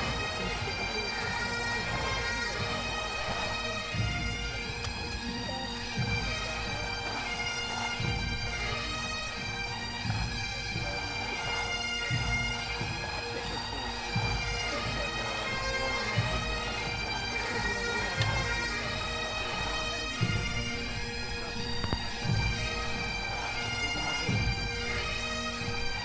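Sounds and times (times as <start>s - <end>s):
bagpipes over drones: 0.0s - 26.0s.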